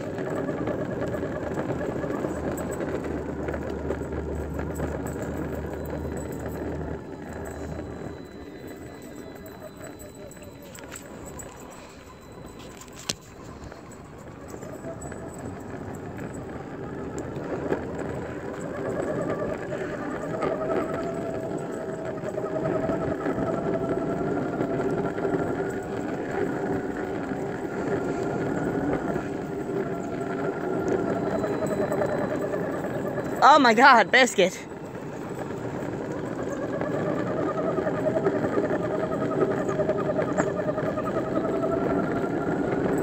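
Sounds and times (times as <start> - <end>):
skateboard wheels rolling on asphalt: 0.0 - 43.0.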